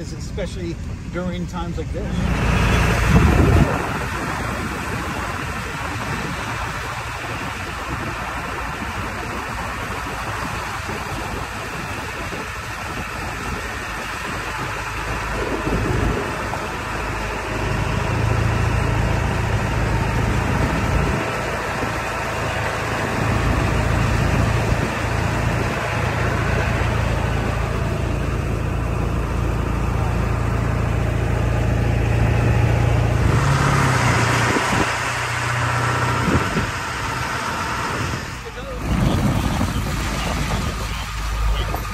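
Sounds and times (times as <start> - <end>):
vehicle engine drone: 0.0 - 41.9.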